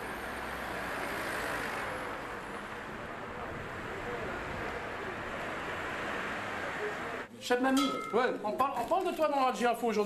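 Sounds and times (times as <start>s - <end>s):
cars driving on busy road: 0.0s - 7.3s.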